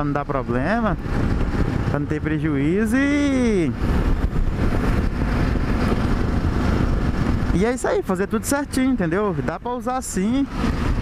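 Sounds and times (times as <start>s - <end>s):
motorcycle engine drone: 0.0s - 11.0s
wind and road noise: 0.0s - 11.0s.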